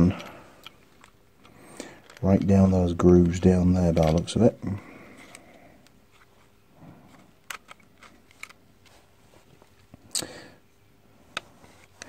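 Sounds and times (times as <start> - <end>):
handling small plastic and metal parts: 0.0 - 9.9
faint steady hum: 0.0 - 12.0.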